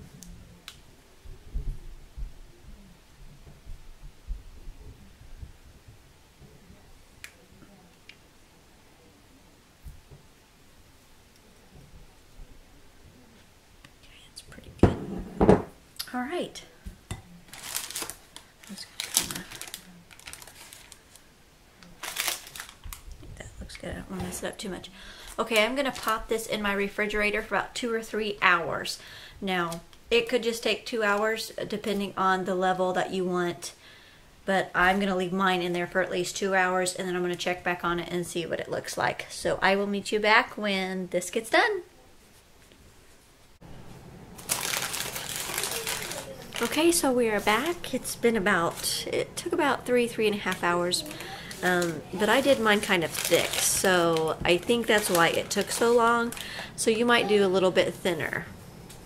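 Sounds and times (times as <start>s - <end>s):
parchment paper crinkling: 17.4s - 23.2s, 24.4s - 26.6s, 44.4s - 58.1s
spatula scraping mixing bowl: 24.1s - 24.7s.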